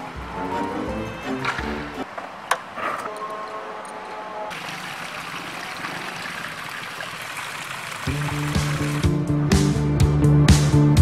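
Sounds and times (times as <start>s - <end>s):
band with bass and steady beat: 8.2s - 11.0s.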